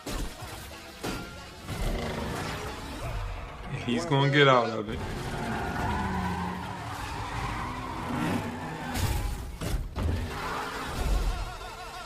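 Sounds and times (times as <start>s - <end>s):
tyres screeching: 3.7s - 12.0s.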